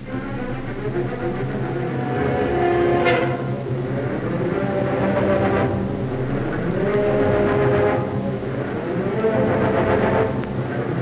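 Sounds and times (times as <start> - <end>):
orchestral music sustained chords: 0.0 - 11.0.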